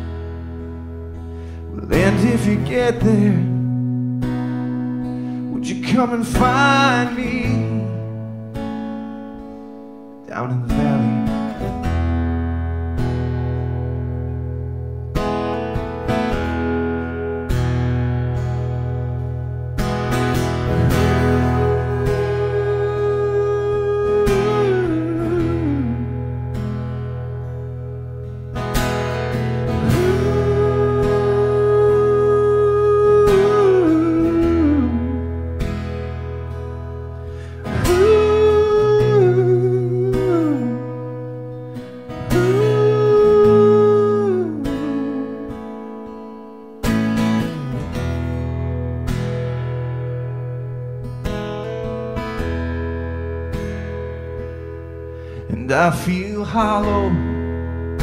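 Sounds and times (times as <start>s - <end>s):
acoustic guitar chords: 0.0s - 58.0s.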